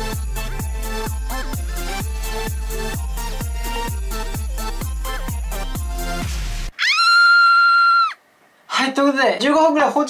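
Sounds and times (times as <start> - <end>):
upbeat music with thumping beat: 0.0 - 6.7.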